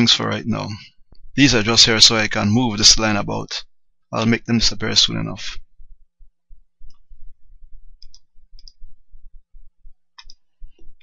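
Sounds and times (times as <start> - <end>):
low irregular rumble: 0.4 - 11.0.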